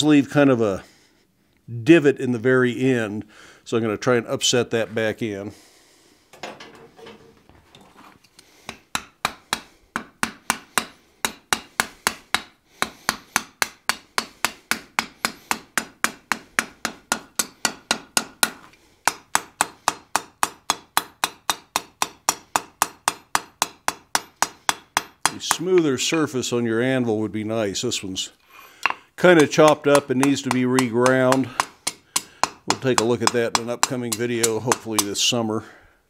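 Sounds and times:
hammer striking steel on anvil: 8.7s - 26.2s, 28.8s - 35.2s.

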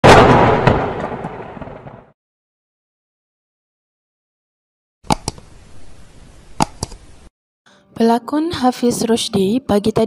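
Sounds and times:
explosion-like boom: 0.0s - 2.2s.

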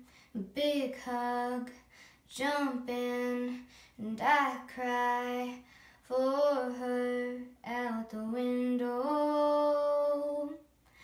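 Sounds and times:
girl singing a cappella: 0.0s - 11.0s.

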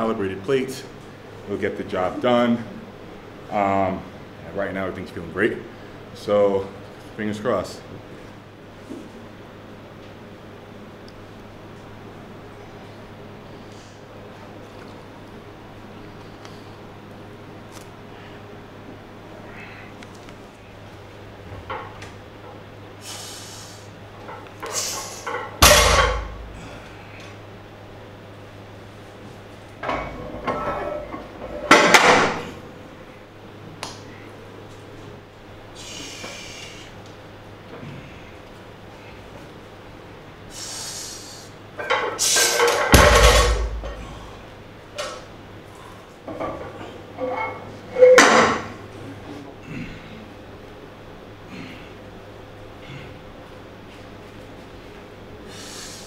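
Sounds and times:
quick noisy breathing: 23.0s - 24.0s, 35.7s - 37.0s, 40.5s - 41.6s, 55.4s - 56.0s
barbell thudding on floor: 25.6s - 26.5s, 43.0s - 44.0s.

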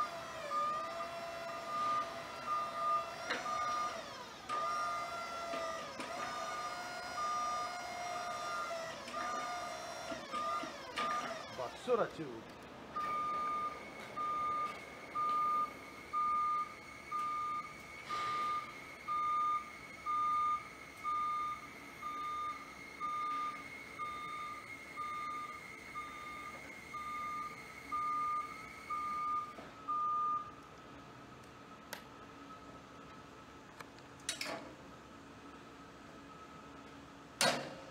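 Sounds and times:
lift motion alarm beeping: 1.6s - 5.0s, 6.0s - 12.0s, 12.9s - 30.6s.

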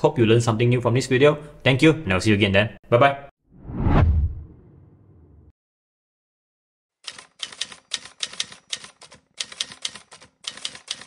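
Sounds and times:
typewriter key clacks: 7.1s - 11.0s.

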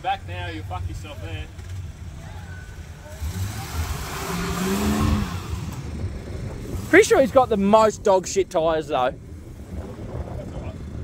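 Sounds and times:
engine revving: 0.6s - 8.0s
low rumble: 3.7s - 11.0s.

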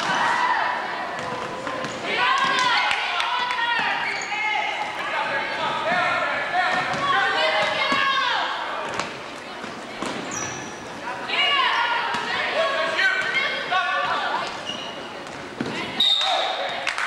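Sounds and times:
players' voices echoing: 0.0s - 17.0s
sneaker squeaks: 3.7s - 5.0s, 8.9s - 11.1s, 13.1s - 16.8s.

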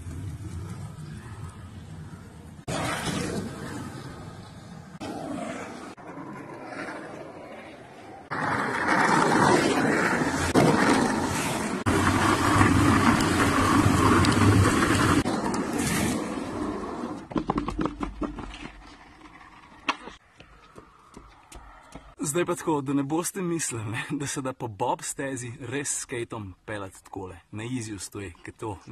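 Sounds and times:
skateboard wheels rolling on concrete: 0.0s - 22.3s.

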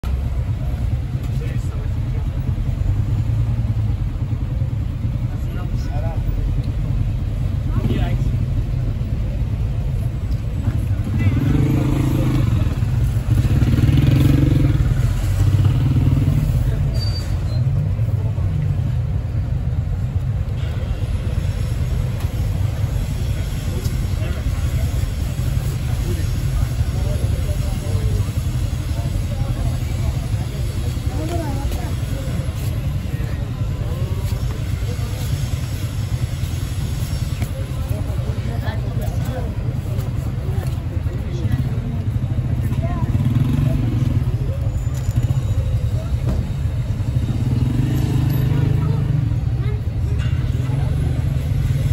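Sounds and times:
low rumble of passing engines: 0.0s - 51.9s
louder vehicle passing: 11.0s - 16.9s.

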